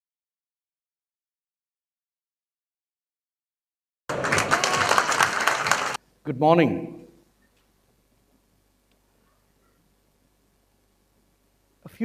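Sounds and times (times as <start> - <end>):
audience applauding: 4.1 - 6.0.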